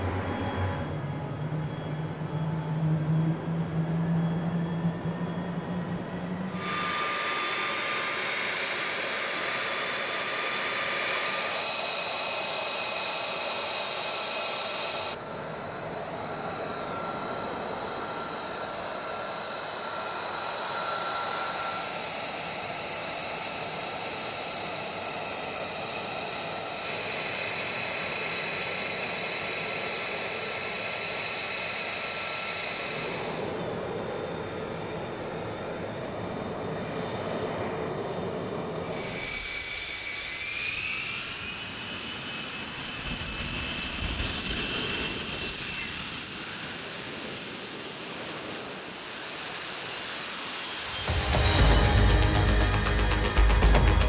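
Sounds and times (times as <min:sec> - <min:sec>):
jet engine idling with whine: 0:00.0 - 0:54.0.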